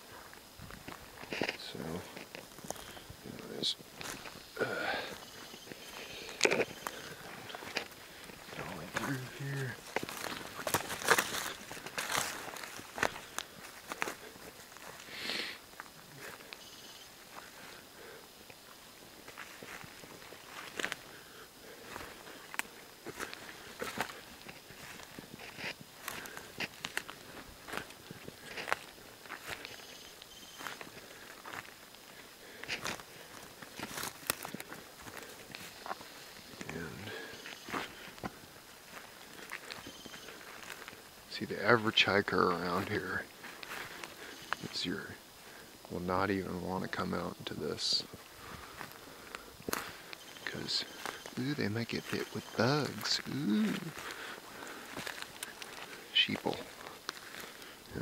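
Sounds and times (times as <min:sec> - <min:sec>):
footsteps through undergrowth: 0:00.0 - 0:58.0
leaf litter crunching: 0:07.6 - 0:15.3
twigs snapping: 0:21.9 - 0:29.6, 0:33.6 - 0:35.7.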